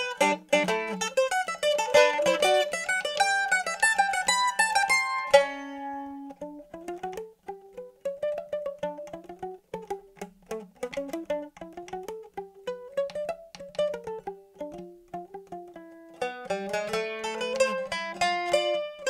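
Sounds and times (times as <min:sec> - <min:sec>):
mandolin playing: 0:00.0 - 0:19.0.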